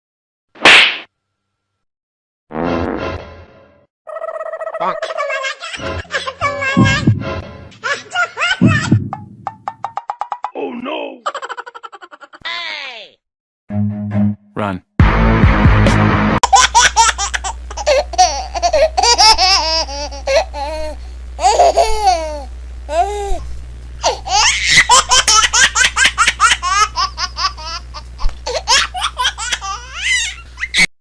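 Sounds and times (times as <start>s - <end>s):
baby giggling: 4.1s - 10.5s, 11.2s - 12.4s, 16.4s - 23.4s, 24.0s - 30.9s
steady low hum: 4.8s - 9.8s, 16.4s - 30.8s.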